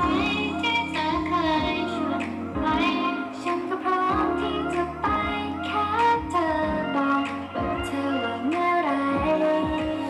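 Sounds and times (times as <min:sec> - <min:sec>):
backing music with steady beat: 0:00.0 - 0:10.0
women singing pop song: 0:00.0 - 0:10.0.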